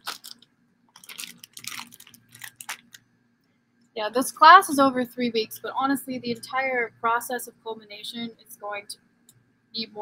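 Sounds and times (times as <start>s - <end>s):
plastic bag crinkling: 0.0s - 3.1s.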